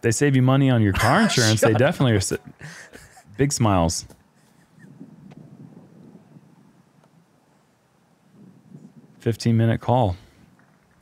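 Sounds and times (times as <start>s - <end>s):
wind rumble on microphone: 4.0s - 11.0s.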